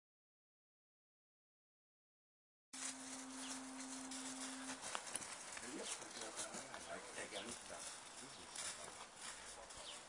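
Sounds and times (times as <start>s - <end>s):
steady hum: 2.8s - 5.6s.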